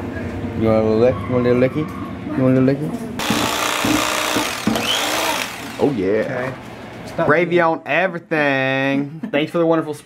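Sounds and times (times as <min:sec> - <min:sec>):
electric carving knife motor buzz: 0:03.2 - 0:05.9.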